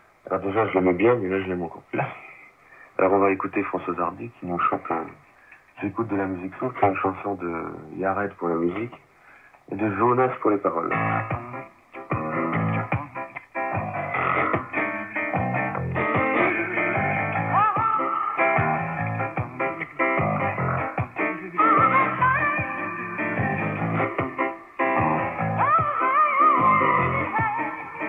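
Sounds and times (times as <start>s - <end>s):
guitar song on am radio: 0.0s - 28.0s.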